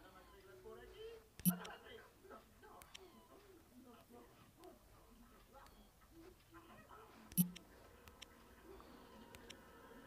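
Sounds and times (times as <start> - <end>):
faint indistinct voices: 0.0 - 10.0.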